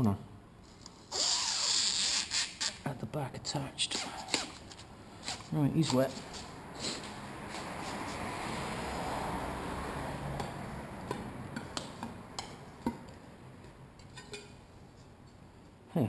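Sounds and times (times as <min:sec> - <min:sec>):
broad rushing noise: 0:04.0 - 0:11.6
hand tools tapping on glass: 0:10.4 - 0:14.5.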